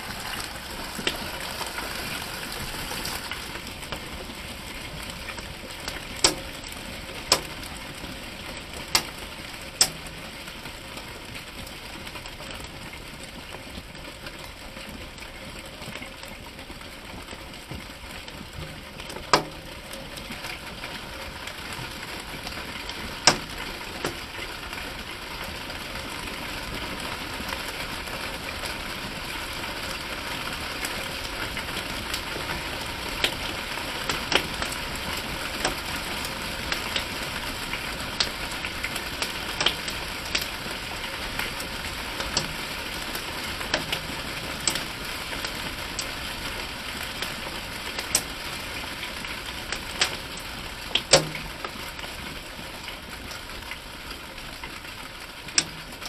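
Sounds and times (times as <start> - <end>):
hailstones cracking: 0.0 - 56.0
rain and hail falling: 0.0 - 56.0.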